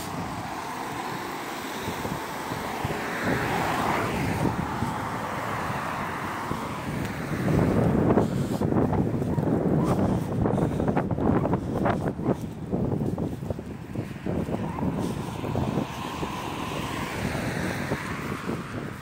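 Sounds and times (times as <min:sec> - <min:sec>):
road traffic passing: 0:00.0 - 0:19.0
wind buffeting microphone: 0:00.0 - 0:19.0.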